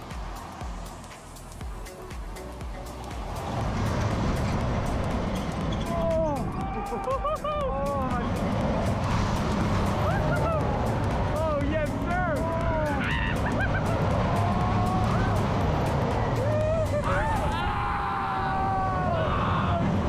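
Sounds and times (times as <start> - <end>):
rumble of wind and ride machinery: 0.0 - 20.0
riders yelling and whooping: 5.7 - 8.3, 10.0 - 15.5, 16.2 - 20.0.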